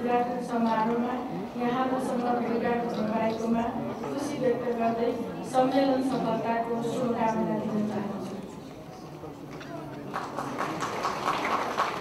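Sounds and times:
audience applauding: 0:10.1 - 0:12.0.

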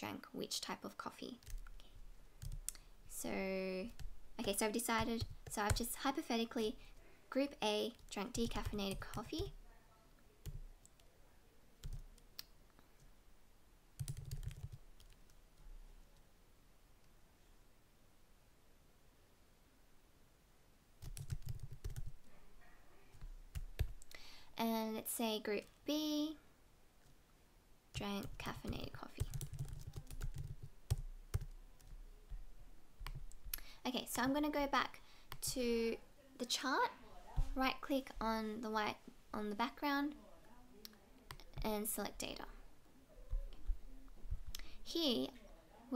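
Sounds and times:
computer keyboard typing: 0:01.4 - 0:02.8, 0:03.8 - 0:06.2, 0:07.9 - 0:09.6, 0:10.4 - 0:11.1, 0:11.8 - 0:12.3, 0:14.0 - 0:15.4, 0:21.0 - 0:22.3, 0:23.5 - 0:24.1, 0:28.0 - 0:32.0, 0:33.0 - 0:33.4
computer keyboard keystrokes: 0:14.0 - 0:15.3, 0:21.0 - 0:22.2, 0:28.2 - 0:32.0.

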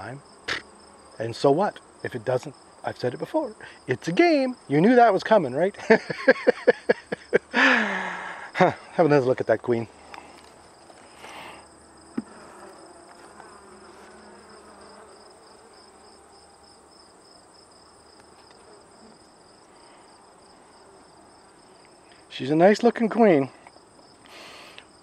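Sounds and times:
bees buzzing faintly: 0:00.0 - 0:25.0
crickets chirping: 0:00.0 - 0:25.0.

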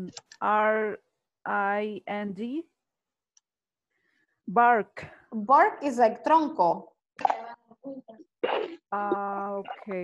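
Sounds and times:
broken voice over video call: 0:05.6 - 0:10.0.

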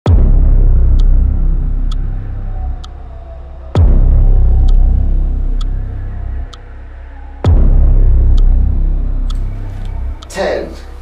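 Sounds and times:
deep bass boom and rumble: 0:00.0 - 0:10.3.

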